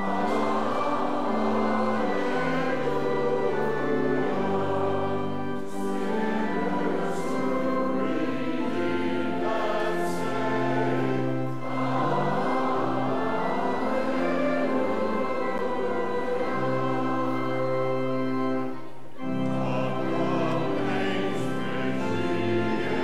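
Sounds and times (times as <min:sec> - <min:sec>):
choir and congregation singing hymn: 0:00.0 - 0:23.0
organ accompaniment: 0:00.0 - 0:23.0.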